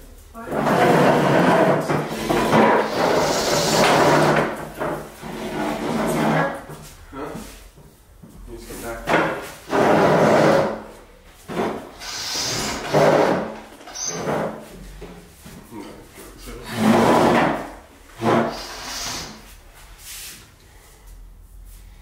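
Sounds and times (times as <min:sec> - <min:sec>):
table dragged across hard floor: 0:00.4 - 0:07.0, 0:08.8 - 0:15.4, 0:16.6 - 0:20.4.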